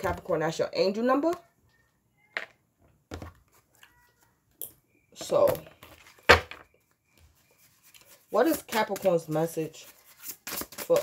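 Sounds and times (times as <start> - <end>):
cards tapping and rustling: 7.8 - 11.0.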